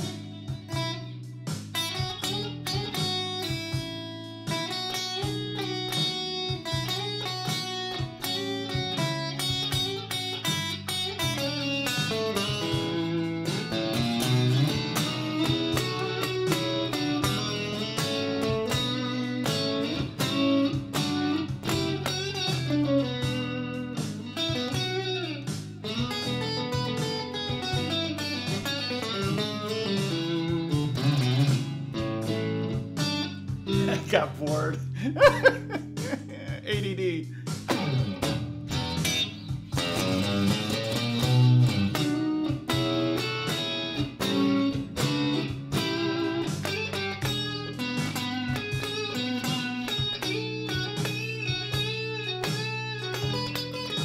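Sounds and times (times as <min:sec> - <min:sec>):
electric guitar blues lines: 0:00.0 - 0:54.0.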